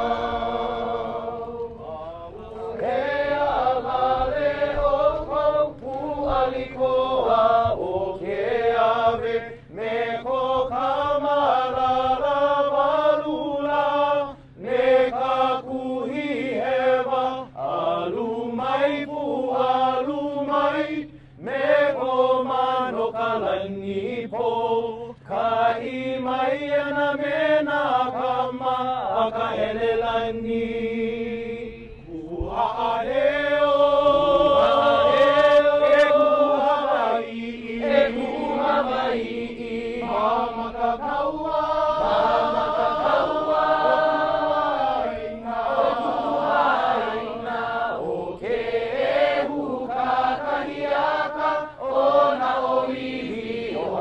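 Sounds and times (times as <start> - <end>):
group chanting in unison: 0.0 - 54.0.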